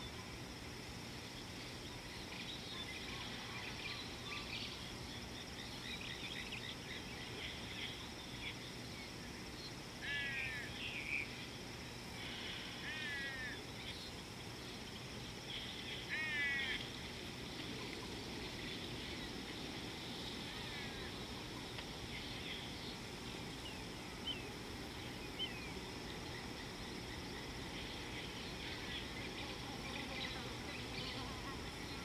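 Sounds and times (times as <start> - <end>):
faint bird chirping: 0.0 - 32.0.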